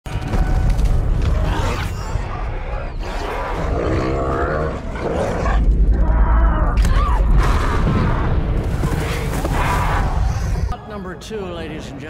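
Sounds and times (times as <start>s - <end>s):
dinosaur roar: 1.2s - 6.8s.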